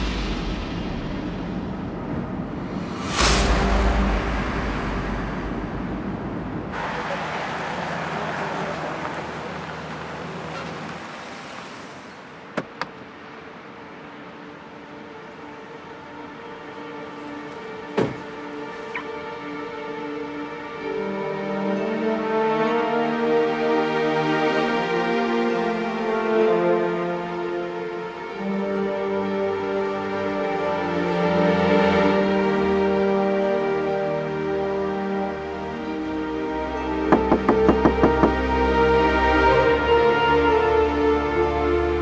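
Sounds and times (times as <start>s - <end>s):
loud whoosh: 0.0s - 7.4s
background music: 0.0s - 10.8s, 12.2s - 42.0s
car road noise: 0.0s - 20.7s, 35.6s - 42.0s
car door clicking: 12.5s - 13.0s, 17.9s - 18.3s
car door shutting: 12.5s - 13.0s, 17.9s - 19.1s.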